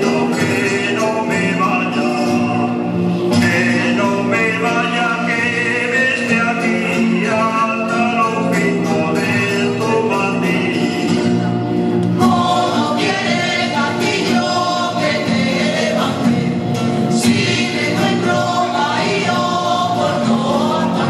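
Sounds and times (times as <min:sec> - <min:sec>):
folk dance music: 0:00.0 - 0:21.0
group of voices singing: 0:00.0 - 0:21.0.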